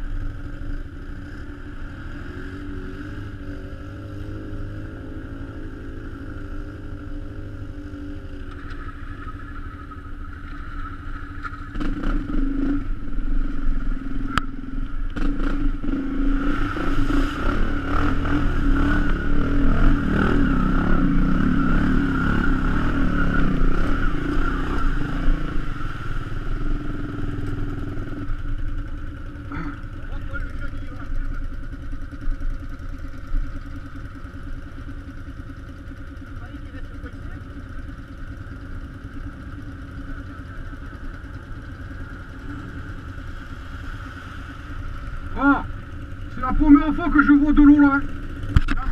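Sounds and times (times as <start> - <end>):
quad bike engine running: 0.0 - 48.9.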